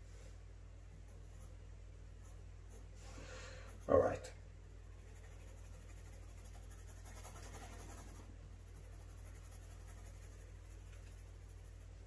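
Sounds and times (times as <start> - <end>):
pencil scratching on paper: 4.9 - 12.0.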